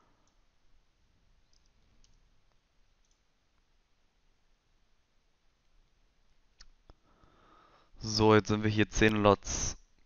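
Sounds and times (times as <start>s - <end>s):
faint mouse and keyboard clicks: 1.4s - 3.7s.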